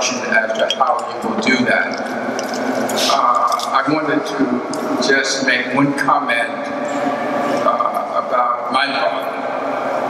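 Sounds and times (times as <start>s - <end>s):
man speaking into microphone: 0.0s - 2.2s, 3.0s - 6.8s, 7.6s - 9.4s.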